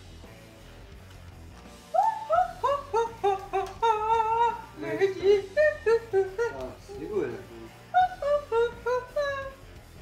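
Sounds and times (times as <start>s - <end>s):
high voice singing wordless tune: 1.9s - 7.1s, 7.8s - 9.7s.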